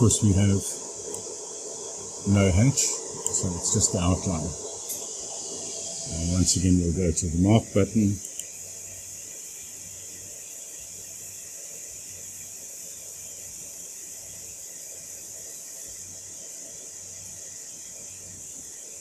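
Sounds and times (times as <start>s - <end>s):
faint low hum: 0.0s - 9.2s
laser marker high hiss: 0.0s - 19.0s.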